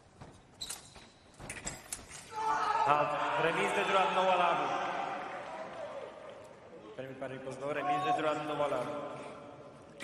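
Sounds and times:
fencer shouting: 0:02.3 - 0:03.0.

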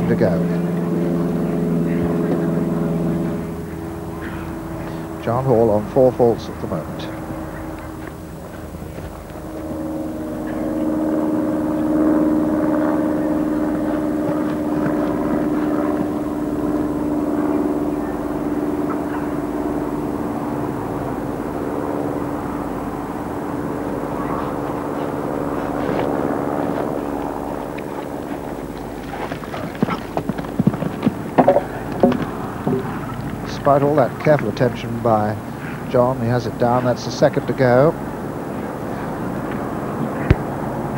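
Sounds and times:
steady low drone: 0:00.0 - 0:40.9
horse hoofbeats on turf: 0:25.0 - 0:34.8.

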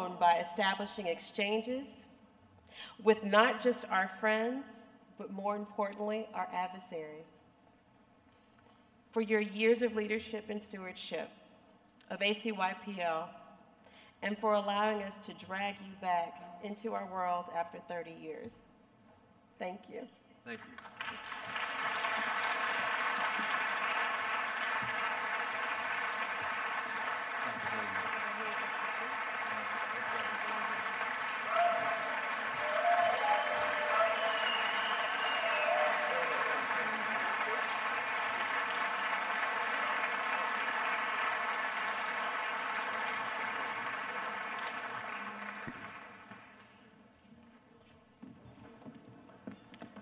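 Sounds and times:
large audience applauding: 0:20.7 - 0:46.6.

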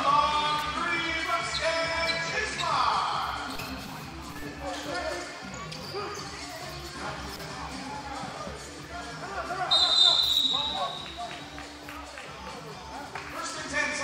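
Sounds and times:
players' voices: 0:00.0 - 0:14.0
referee's whistle blast: 0:09.7 - 0:11.2.

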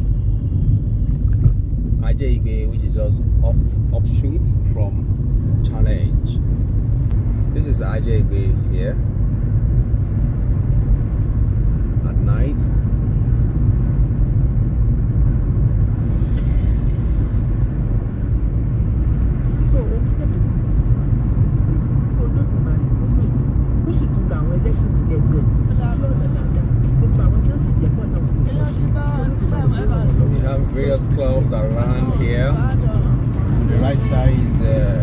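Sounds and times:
car engine and road noise: 0:00.0 - 0:35.0.

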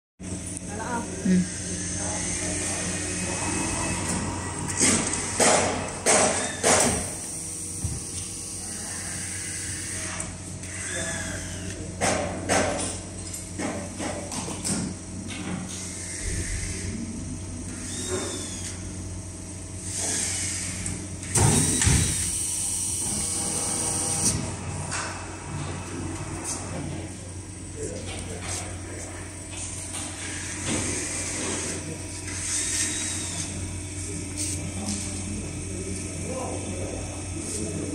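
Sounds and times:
steady machine hum: 0:00.2 - 0:37.9
sharp mechanical knocks: 0:04.8 - 0:07.1.

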